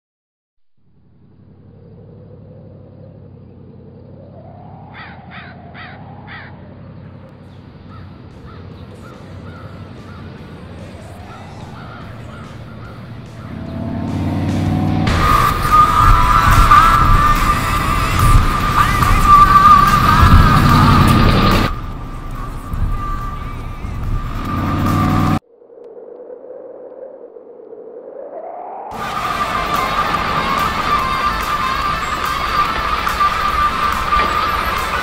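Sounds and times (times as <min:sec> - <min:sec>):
low drone: 0:00.8 - 0:35.0
slow gliding tones: 0:01.1 - 0:35.0.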